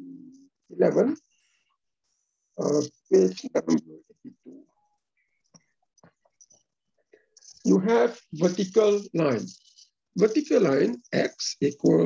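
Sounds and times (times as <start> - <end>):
person speaking: 0.0 - 1.2, 2.6 - 4.7, 7.4 - 12.0.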